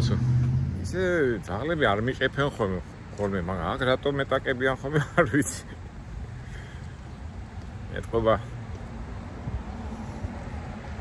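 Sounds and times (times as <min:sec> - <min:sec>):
low vehicle engine hum: 0:00.0 - 0:01.6
man talking: 0:00.0 - 0:05.8, 0:07.8 - 0:08.6.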